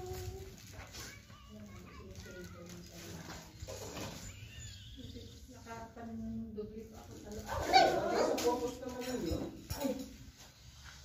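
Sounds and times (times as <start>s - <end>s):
faint voices talking: 0.0s - 10.6s.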